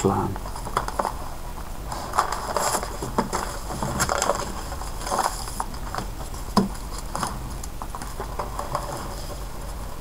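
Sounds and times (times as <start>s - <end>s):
paper rustling and clicking: 0.4s - 1.2s, 1.9s - 9.8s.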